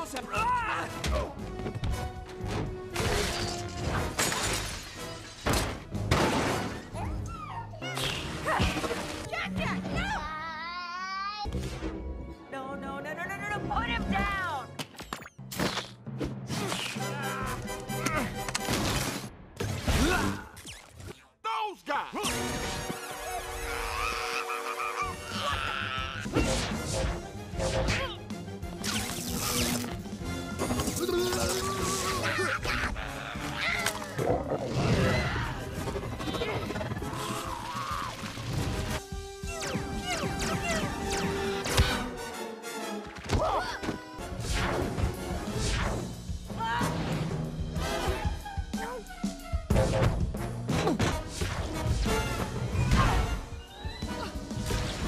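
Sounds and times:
dramatic film score: 0.0s - 55.0s.

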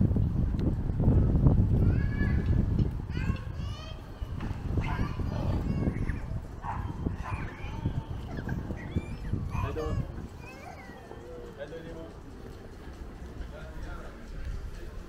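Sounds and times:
child calling out: 3.1s - 6.4s, 7.1s - 11.5s.

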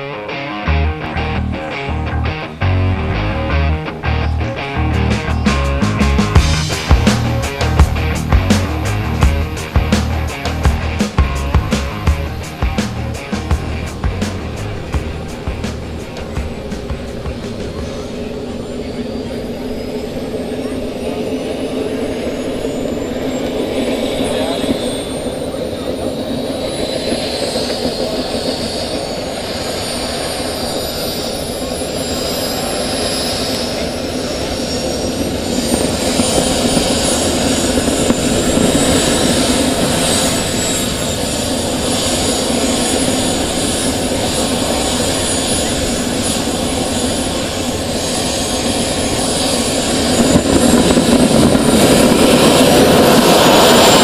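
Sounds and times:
gas turbine high whine: 0.0s - 54.0s.

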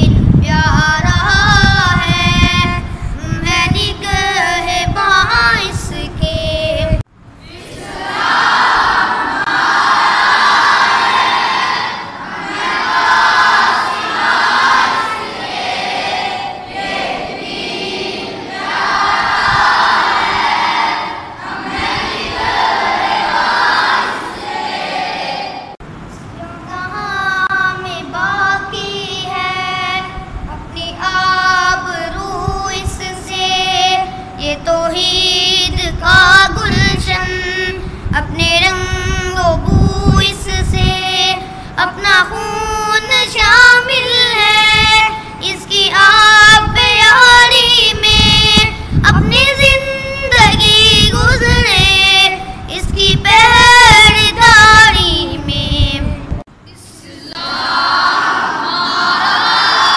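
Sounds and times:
boys singing unaccompanied: 0.0s - 25.8s, 26.4s - 59.9s
boys chanting in unison: 7.4s - 25.8s, 57.0s - 59.9s.

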